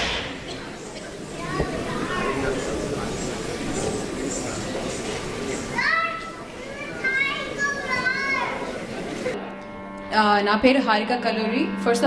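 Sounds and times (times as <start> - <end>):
murmur of children's chatter: 0.0 - 12.0
children calling and squealing: 5.5 - 9.4.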